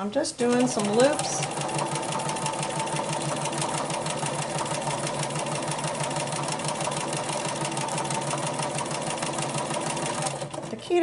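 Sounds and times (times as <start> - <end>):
sewing machine stitching: 0.4 - 11.0.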